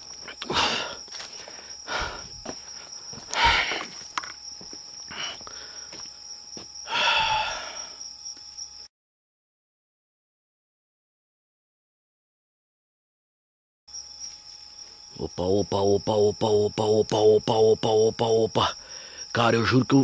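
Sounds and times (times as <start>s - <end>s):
night insects trilling: 0.0s - 8.9s, 13.9s - 20.0s.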